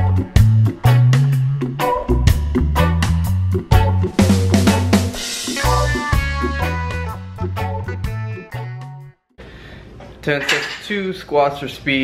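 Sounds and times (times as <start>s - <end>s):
background music: 0.0s - 9.2s
man talking: 10.2s - 12.0s.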